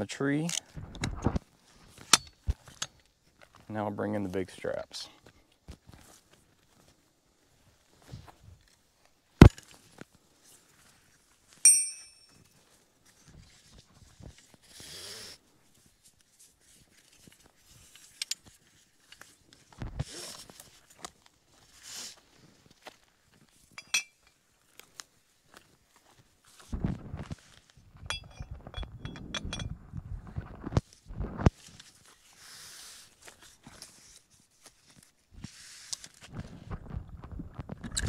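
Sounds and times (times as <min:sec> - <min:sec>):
metal strap hooks clinking: 0:11.6 - 0:12.4, 0:23.8 - 0:24.4, 0:28.1 - 0:29.7.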